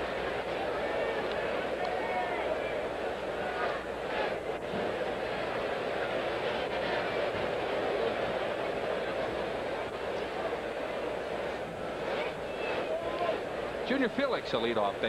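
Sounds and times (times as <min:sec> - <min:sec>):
stadium crowd murmuring: 0:00.0 - 0:15.0.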